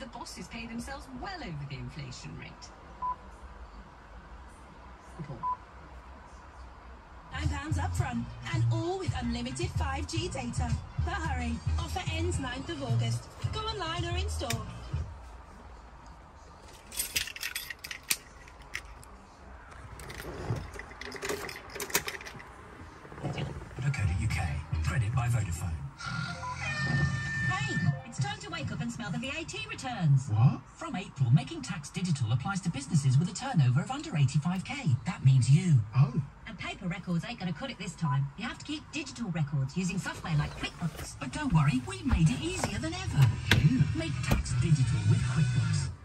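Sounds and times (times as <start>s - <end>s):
low background hum: 0.0s - 26.7s, 27.3s - 46.0s.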